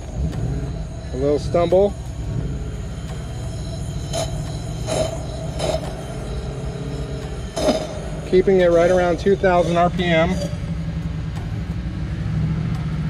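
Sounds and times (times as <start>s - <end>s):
engine running on fast idle: 0.0s - 13.0s.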